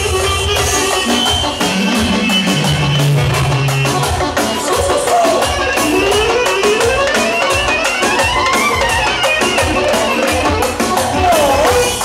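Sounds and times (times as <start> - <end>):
clarinet: 0.0 - 12.0
live band music: 0.0 - 12.0.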